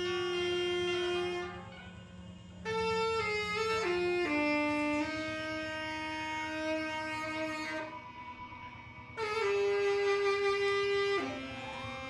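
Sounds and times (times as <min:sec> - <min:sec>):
saxophone long note: 0:00.0 - 0:01.7, 0:02.6 - 0:12.0.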